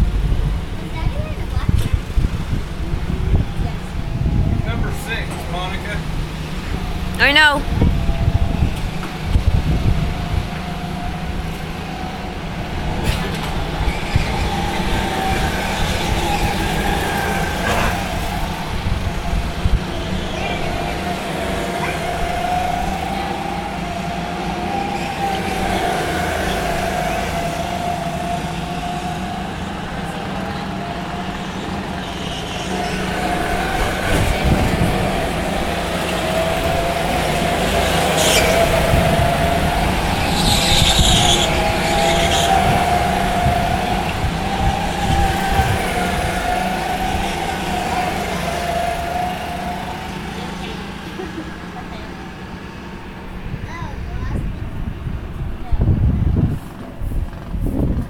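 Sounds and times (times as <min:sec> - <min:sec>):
go-kart engines whining: 0:00.0 - 0:58.0.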